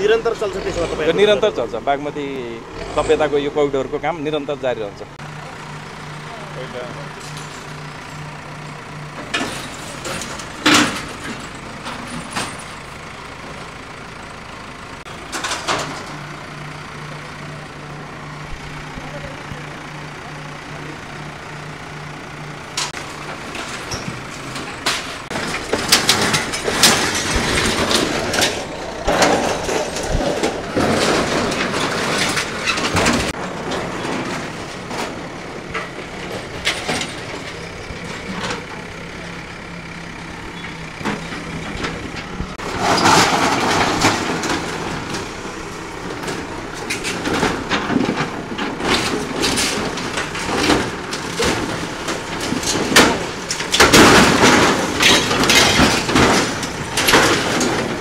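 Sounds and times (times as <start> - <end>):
demolition machinery engine hum: 0.0 - 58.0
knocks and crashes: 5.4 - 13.7, 15.0 - 21.4, 22.2 - 58.0.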